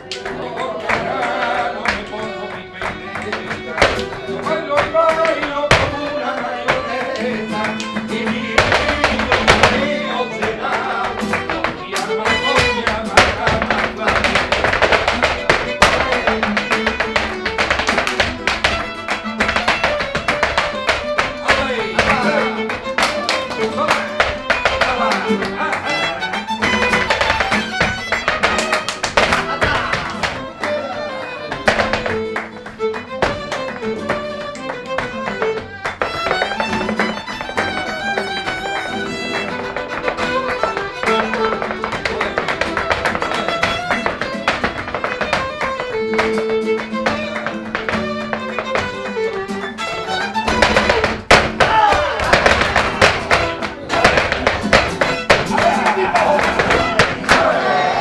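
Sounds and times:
violin melody: 0:00.0 - 0:55.7, 0:56.3 - 0:58.0
acoustic guitar: 0:00.0 - 0:58.0
rhythmic hand-clapping: 0:00.0 - 0:58.0
heels stamping on wooden stage: 0:01.9 - 0:57.5.

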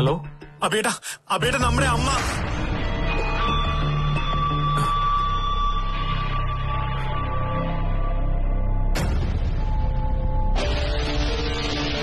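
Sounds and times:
low music drone: 0:02.1 - 0:12.0.

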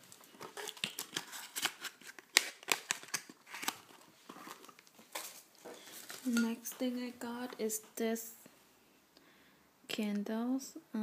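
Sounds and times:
plastic packaging rustling: 0:00.0 - 0:07.7.

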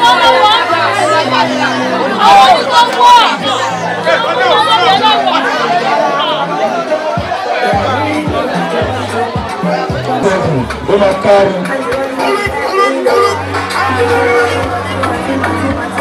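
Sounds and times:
background music with bass line: 0:00.0 - 0:16.0
people chattering: 0:00.0 - 0:16.0
steady beat: 0:07.2 - 0:16.0.

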